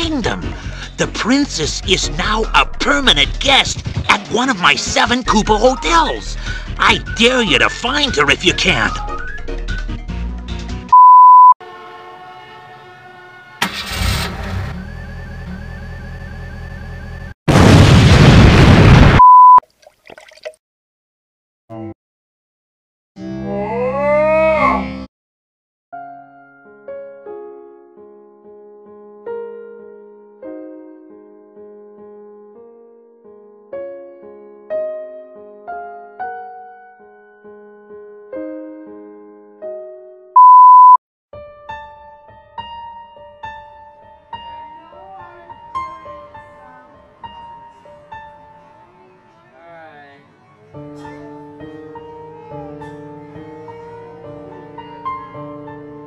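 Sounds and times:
test-tone beep: 0:11.0 - 0:11.6, 0:19.2 - 0:19.6, 0:40.4 - 0:41.0
sudden boom: 0:17.5 - 0:19.2
soft slow piano notes: 0:41.9 - 0:49.4, 0:50.6 - 0:56.0.

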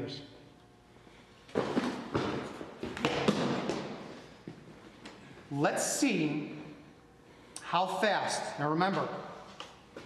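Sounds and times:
thuds and footfalls on hard floor: 0:01.5 - 0:04.1.

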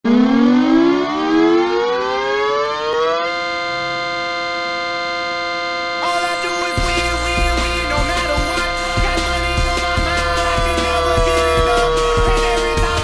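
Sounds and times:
hockey goal horn: 0:03.0 - 0:13.0.

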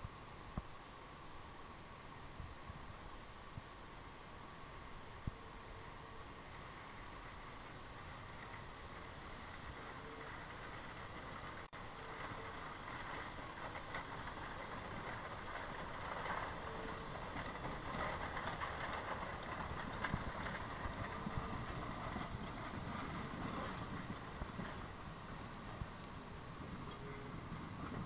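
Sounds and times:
steam locomotive working: 0:00.0 - 0:28.0
wheels rolling on rails: 0:04.4 - 0:28.0.

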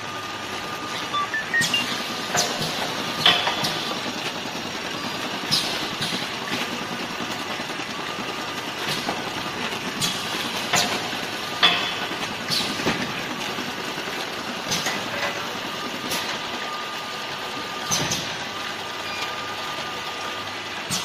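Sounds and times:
packing machine running: 0:00.0 - 0:21.0.

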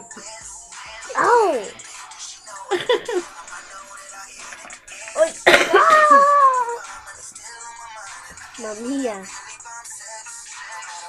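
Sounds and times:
person crying out: 0:01.1 - 0:01.7, 0:05.2 - 0:06.9.

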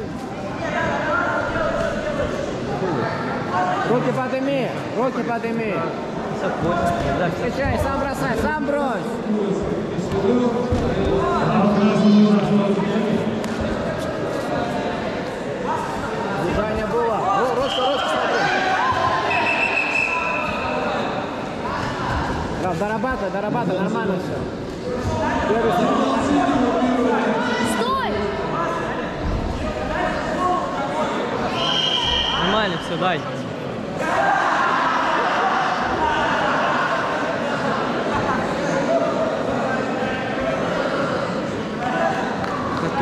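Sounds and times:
people calling out in a hall: 0:14.6 - 0:22.6, 0:24.7 - 0:43.0.

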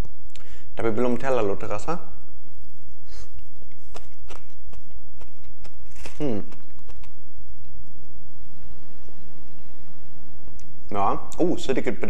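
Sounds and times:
steady low hum: 0:00.0 - 0:12.0
man chewing food: 0:02.8 - 0:07.7.

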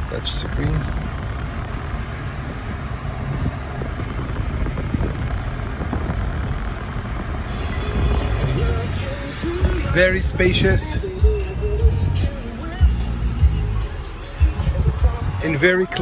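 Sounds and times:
car engine rumble: 0:00.0 - 0:16.0
faint car radio music: 0:00.0 - 0:16.0
passing traffic: 0:00.0 - 0:16.0.

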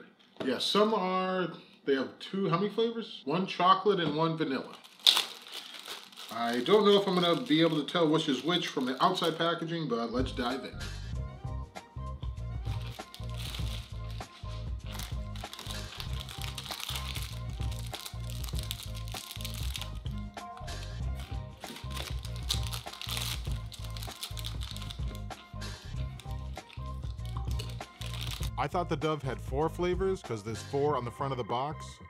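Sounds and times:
plastic wrappers crinkling: 0:04.6 - 0:09.6, 0:12.6 - 0:28.5
background music with steady beat: 0:06.4 - 0:32.0.

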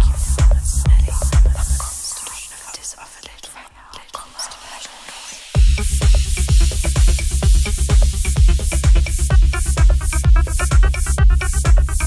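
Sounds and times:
electronic dance music: 0:00.0 - 0:02.5, 0:05.3 - 0:12.0
high hiss: 0:00.1 - 0:03.2, 0:04.3 - 0:09.2.

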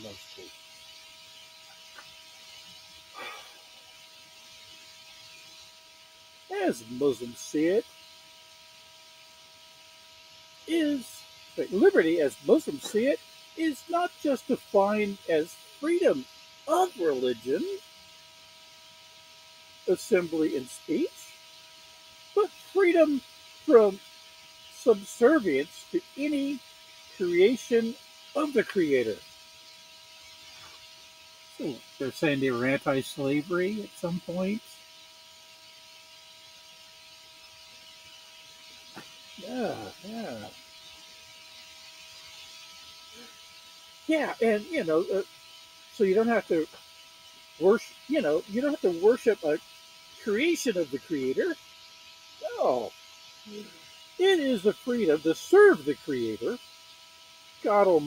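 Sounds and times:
electrical whine: 0:00.0 - 0:58.0
low hiss: 0:00.0 - 0:58.0
man talking: 0:06.5 - 0:07.8, 0:10.7 - 0:17.8, 0:19.9 - 0:21.2, 0:22.4 - 0:24.0, 0:24.8 - 0:26.6, 0:27.2 - 0:29.2, 0:31.6 - 0:34.6, 0:39.4 - 0:40.5, 0:44.1 - 0:45.2, 0:46.0 - 0:46.7, 0:47.6 - 0:49.6, 0:50.2 - 0:51.6, 0:52.4 - 0:52.9, 0:54.2 - 0:56.6, 0:57.6 - 0:58.0.

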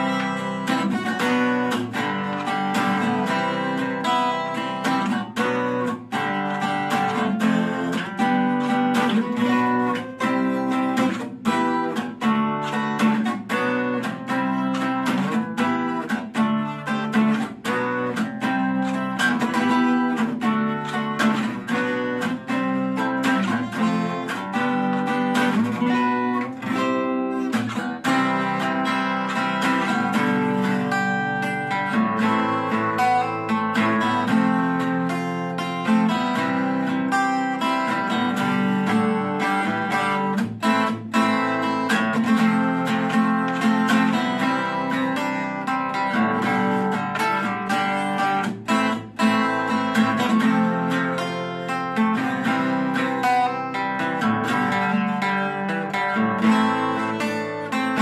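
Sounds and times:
acoustic guitar strummed and picked: 0:00.0 - 0:58.0.

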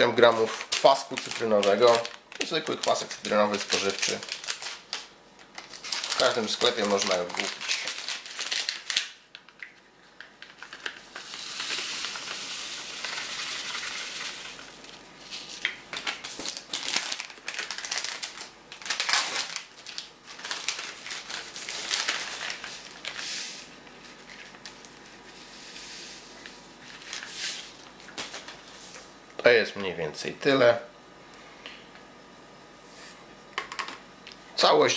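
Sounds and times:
dry powder crinkling and crackling: 0:00.0 - 0:29.1.

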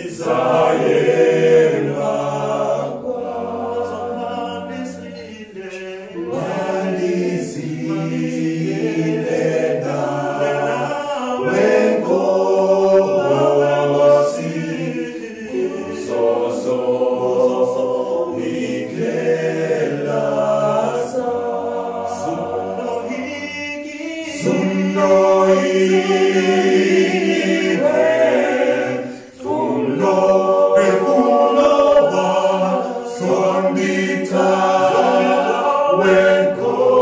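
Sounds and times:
male vocal group singing harmony: 0:00.0 - 0:37.0.

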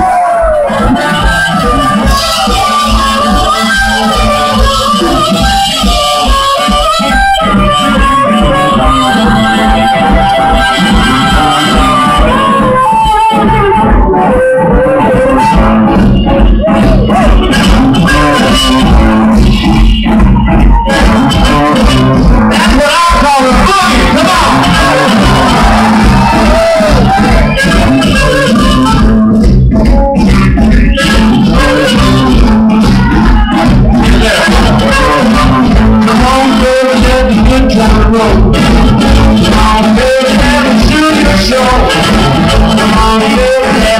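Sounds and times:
bass guitar: 0:00.0 - 0:43.9
drums: 0:00.0 - 0:43.9
electric guitars: 0:00.0 - 0:43.9
harmonica solo: 0:00.0 - 0:43.9
rhythm section: 0:00.0 - 0:43.9.

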